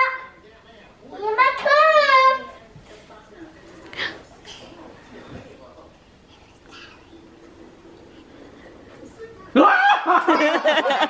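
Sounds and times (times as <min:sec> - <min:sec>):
child laughing: 0:09.6 - 0:11.0.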